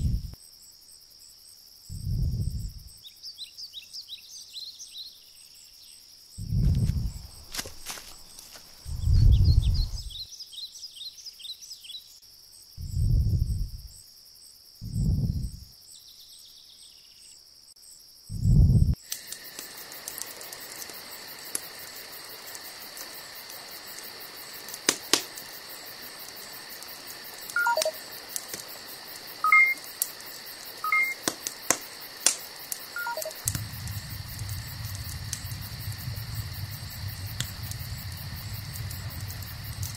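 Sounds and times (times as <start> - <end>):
deep low thuds: 0.0 - 0.4, 1.9 - 3.0, 6.4 - 7.8, 8.8 - 10.2, 12.8 - 13.9, 14.8 - 15.6, 18.3 - 19.0
high insect-like hum: 0.0 - 3.4, 4.0 - 39.9
low rumbling noise: 1.9 - 3.0, 6.4 - 7.5, 8.8 - 10.2, 12.8 - 13.9, 14.8 - 15.6, 18.3 - 19.0, 33.3 - 39.9
scattered clicks: 26.3 - 36.4
short electronic beeps: 27.6 - 28.0, 29.4 - 29.8, 30.8 - 31.2, 33.0 - 33.4.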